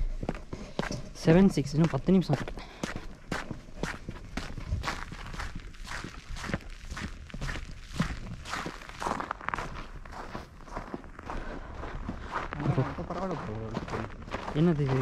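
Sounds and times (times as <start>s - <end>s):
footsteps on packed snow: 0.0s - 15.0s.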